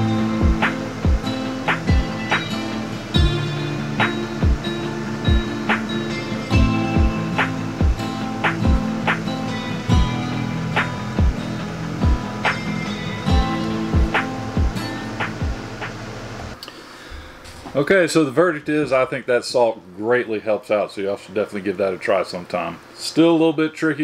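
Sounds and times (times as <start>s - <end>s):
background music with steady beat: 0.0s - 16.6s.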